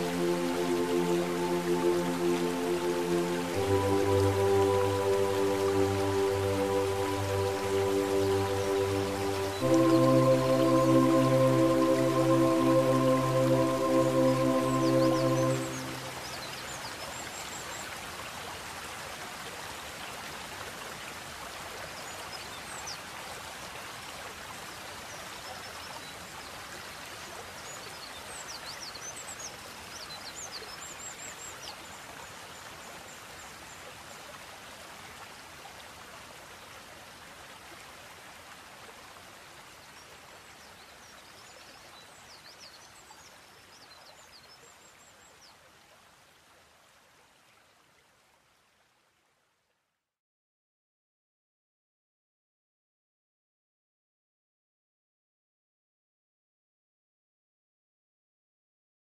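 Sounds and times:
relaxation music chord: 0.0s - 16.8s
flowing creek rushing: 0.0s - 49.0s.

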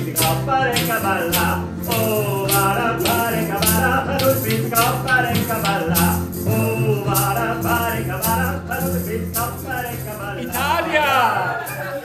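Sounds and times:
bowed bass line: 0.0s - 12.0s
plucked guitar: 0.0s - 12.0s
tambourine jingles: 0.0s - 12.0s.

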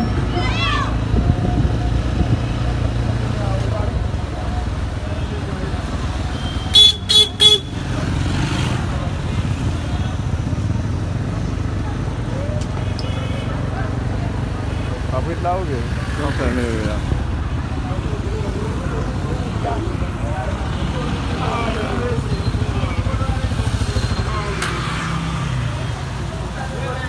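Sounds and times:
vehicle engines running: 0.0s - 27.0s
vehicle horn beeps: 6.4s - 7.8s.

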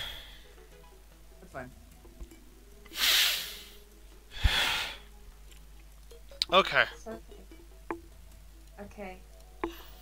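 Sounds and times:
person breathing heavily into microphone: 2.9s - 5.1s.

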